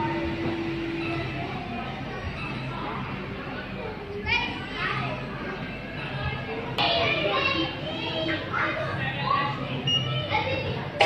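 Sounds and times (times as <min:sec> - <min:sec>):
busy room background noise: 0:00.0 - 0:11.0
children talking and calling out: 0:00.0 - 0:11.0.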